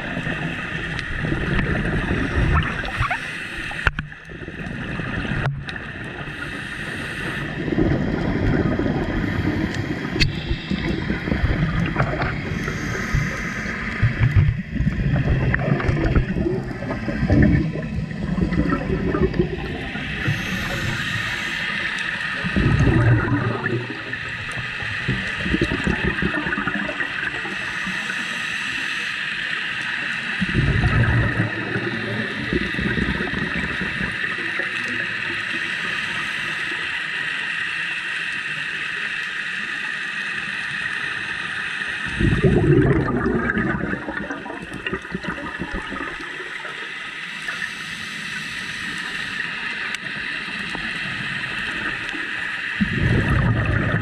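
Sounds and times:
underwater bubbling bursts: 0.0s - 28.3s, 29.5s - 36.6s, 40.9s - 54.0s
steady high hiss: 19.8s - 22.5s.

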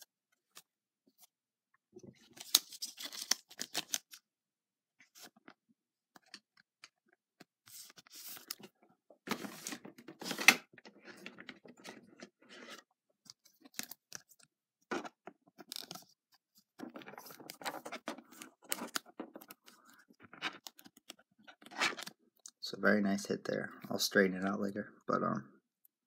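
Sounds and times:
plastic scraping and rustling: 7.7s - 14.1s, 14.9s - 22.2s.

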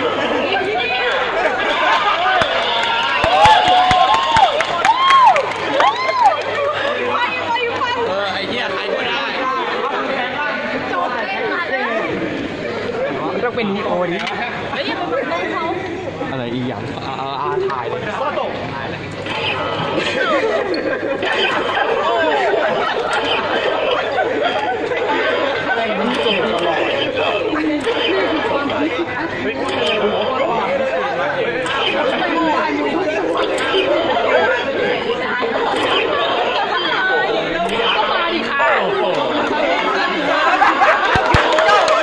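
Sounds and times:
people chattering: 0.0s - 42.0s.

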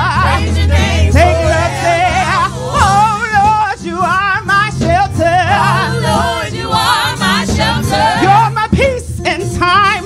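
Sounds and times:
voices singing gospel: 0.0s - 10.0s.

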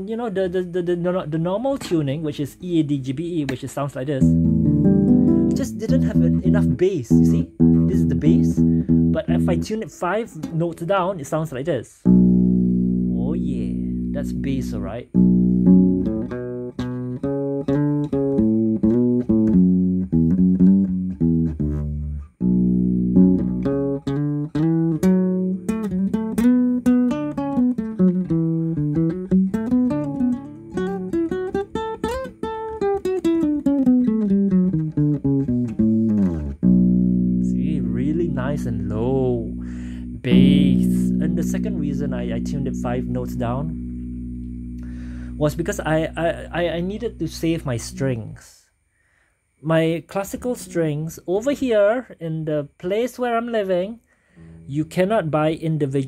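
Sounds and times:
classical guitar plucked notes: 4.2s - 10.9s, 12.0s - 48.2s, 54.4s - 55.0s.

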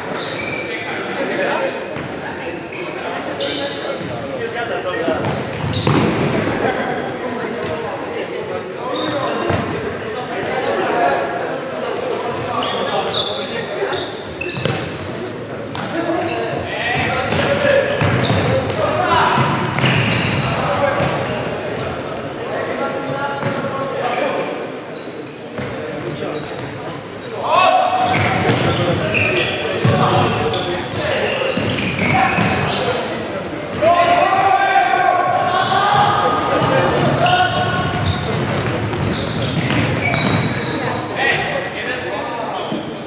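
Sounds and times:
players shouting: 33.7s - 42.1s.

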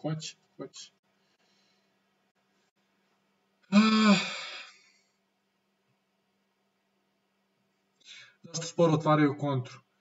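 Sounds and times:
man sighing: 3.6s - 5.1s.

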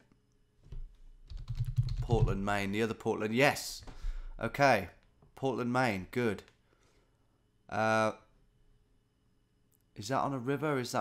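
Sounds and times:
typing on computer keyboard: 0.7s - 2.4s.

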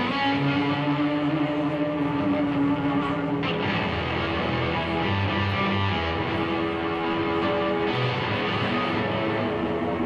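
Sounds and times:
electric guitar sustained note: 0.0s - 10.0s
live rock band: 0.0s - 10.0s.

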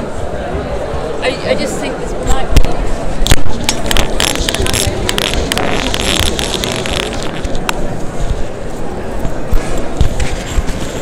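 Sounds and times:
chatter of people in a hall: 0.0s - 11.0s.

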